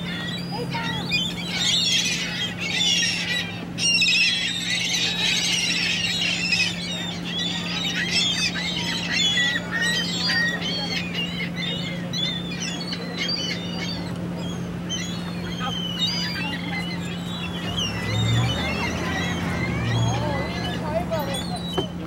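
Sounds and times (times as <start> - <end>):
steady low hum: 0.0 - 21.7
gulls squawking: 0.0 - 22.0.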